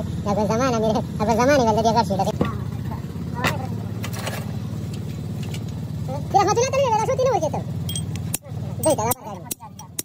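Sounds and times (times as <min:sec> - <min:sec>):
low engine-like hum: 0:00.0 - 0:10.0.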